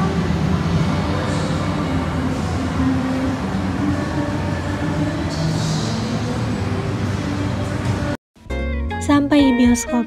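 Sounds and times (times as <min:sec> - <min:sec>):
mall background rumble: 0:00.0 - 0:08.2.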